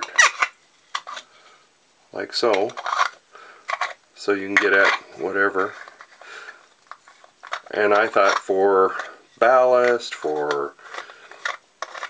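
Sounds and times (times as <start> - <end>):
plastic scraping: 2.5 - 12.0.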